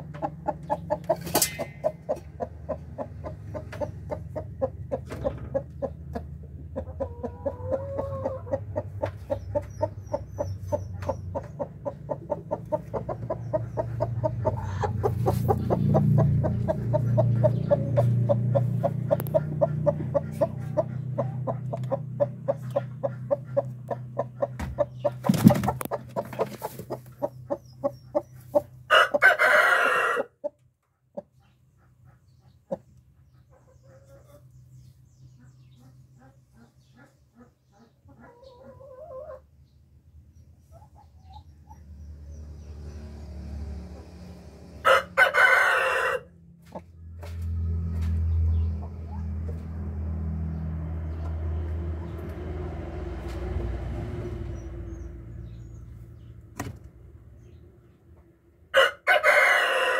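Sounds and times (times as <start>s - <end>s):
chickens clucking: 0.0s - 42.0s, 43.8s - 50.1s
rooster crowing: 28.9s - 30.3s, 44.8s - 46.3s, 58.8s - 59.9s.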